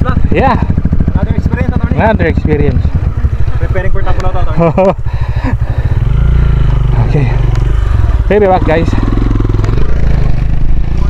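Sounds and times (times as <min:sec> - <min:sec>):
dirt bike engine idling: 0:00.0 - 0:11.0.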